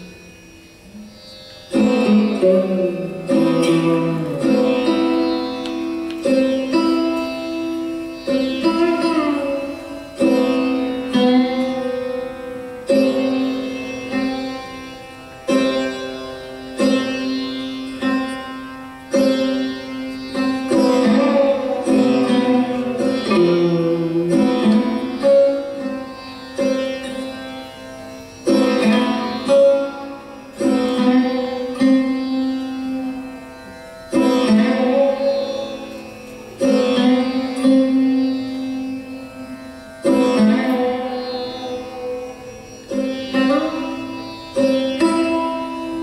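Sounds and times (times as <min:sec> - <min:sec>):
plucked lute notes: 0:00.0 - 0:46.0.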